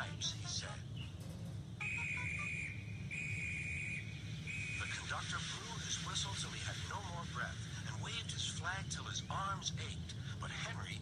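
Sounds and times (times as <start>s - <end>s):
constant low hum: 0.0s - 11.0s
whistle blasts: 1.8s - 5.3s.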